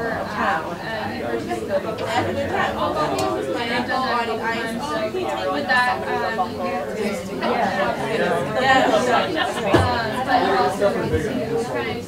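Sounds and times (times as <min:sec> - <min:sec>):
overlapping conversations: 0:00.0 - 0:12.0.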